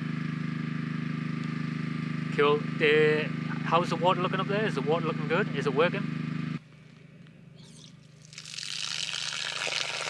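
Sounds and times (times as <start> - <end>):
generator engine humming: 0.0 - 8.5.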